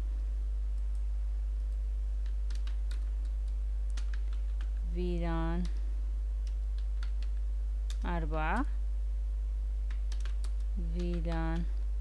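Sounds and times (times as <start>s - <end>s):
low electrical hum: 0.0s - 12.0s
keyboard typing clicks: 1.6s - 4.8s, 6.4s - 8.7s, 9.8s - 11.7s.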